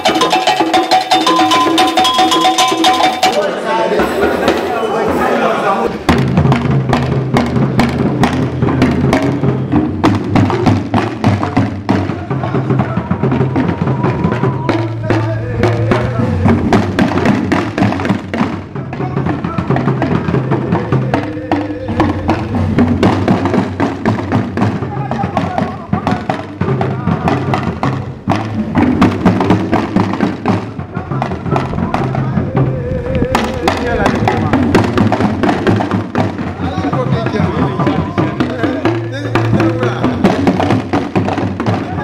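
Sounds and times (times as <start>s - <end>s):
voices: 0.0s - 6.2s, 8.3s - 28.4s, 30.4s - 42.0s
talking drums playing fast: 0.0s - 42.0s.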